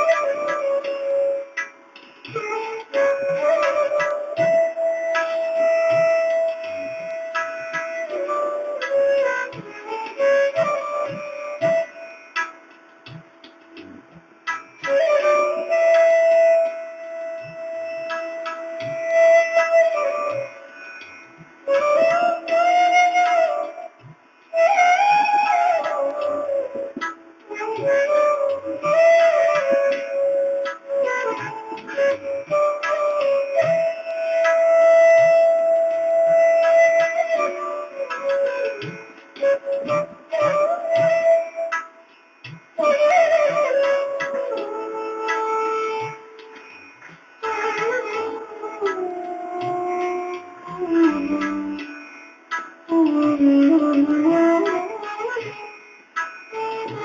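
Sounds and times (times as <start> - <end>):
flute playing slow melody: 0.0 - 57.0.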